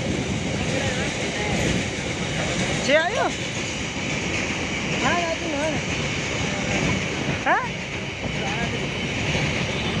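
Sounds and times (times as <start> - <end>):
freight train wagons on rails: 0.0 - 10.0.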